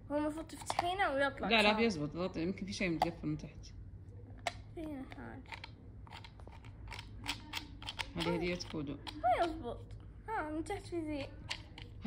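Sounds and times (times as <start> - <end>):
plastic toy clicks and snaps: 5.5 - 9.6, 11.2 - 12.0.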